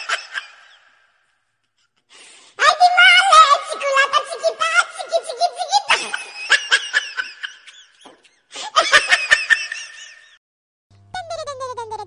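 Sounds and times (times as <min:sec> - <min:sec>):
high-pitched laughter: 0:00.0 - 0:00.9, 0:04.8 - 0:10.4, 0:11.1 - 0:12.0.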